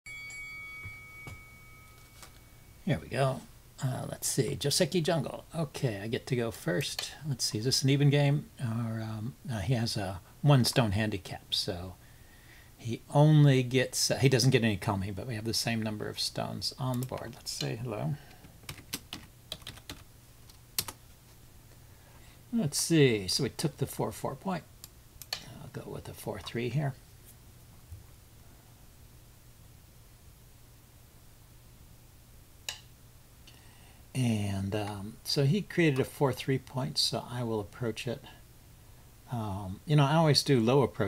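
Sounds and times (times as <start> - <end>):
electronic bell chime: 0.1 - 2.9
keyboard typing: 18.6 - 21.0.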